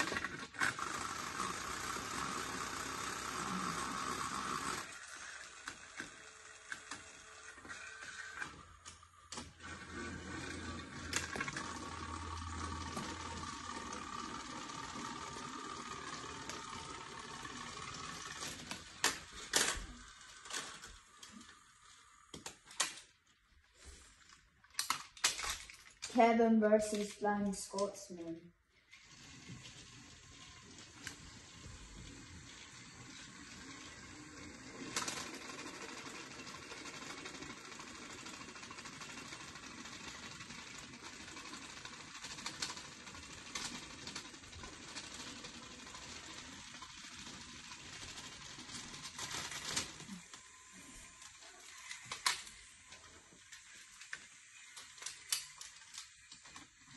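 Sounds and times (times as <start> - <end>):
toy train motor whirring: 0.0 - 23.2, 24.2 - 56.9.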